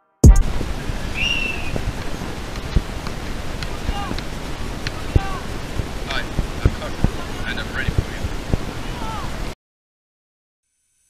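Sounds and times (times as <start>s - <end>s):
wind noise on microphone: 0.2s - 9.6s.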